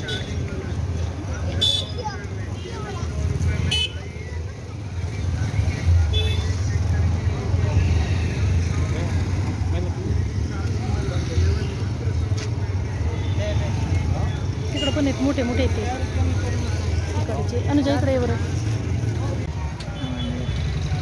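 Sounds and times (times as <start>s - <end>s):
people talking: 0.0s - 21.0s
road noise rumble: 0.0s - 21.0s.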